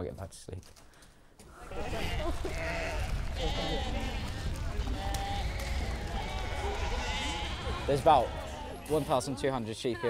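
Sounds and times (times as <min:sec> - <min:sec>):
sheep bleating: 0:01.6 - 0:10.0.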